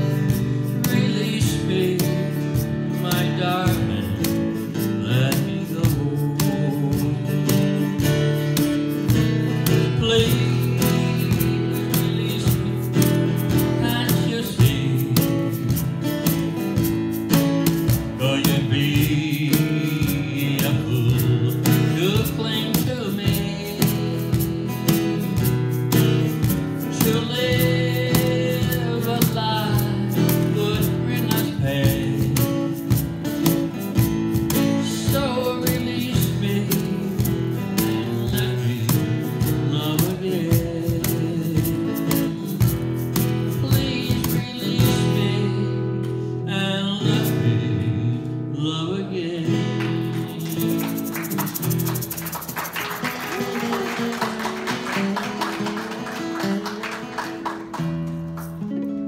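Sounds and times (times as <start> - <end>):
man singing: 0.0 - 16.7, 17.7 - 54.5
drumstick beat: 0.0 - 45.2, 49.8 - 58.6
strummed acoustic guitar: 0.0 - 59.0
egg shaker: 49.9 - 53.9.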